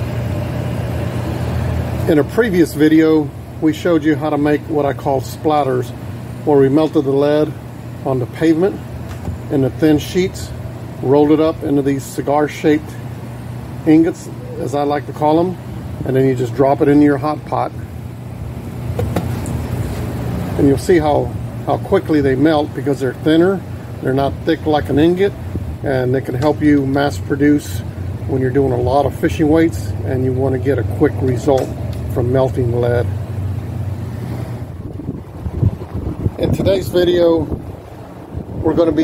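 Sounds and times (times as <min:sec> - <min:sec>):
steady low hum: 0:00.0 - 0:39.0
wind buffeting microphone: 0:34.7 - 0:38.8.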